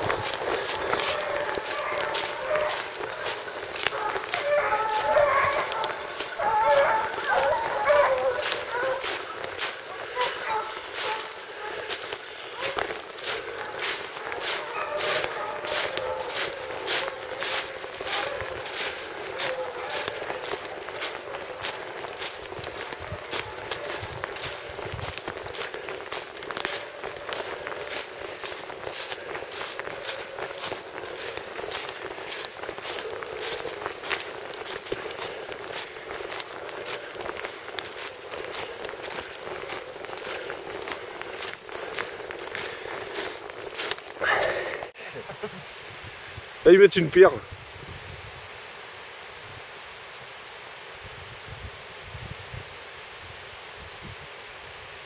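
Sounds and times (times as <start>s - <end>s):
footsteps in dry leaves: 0.0s - 45.0s.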